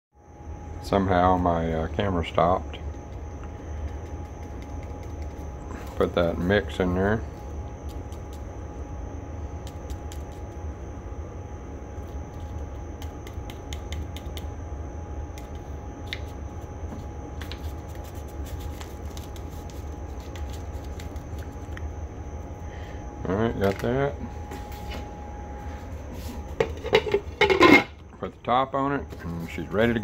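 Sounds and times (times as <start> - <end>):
steady low hum: 0.1 - 30.0.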